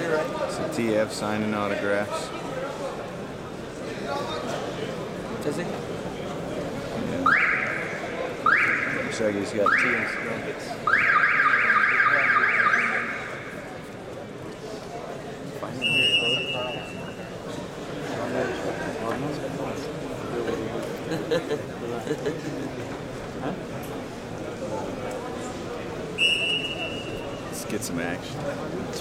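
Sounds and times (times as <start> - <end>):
referee's whistle blast: 15.8 - 17.1, 26.2 - 27.4.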